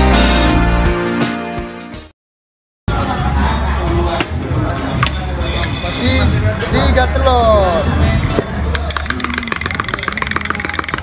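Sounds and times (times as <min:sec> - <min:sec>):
background music: 0:00.0 - 0:02.1
glass clinks: 0:08.2 - 0:11.0.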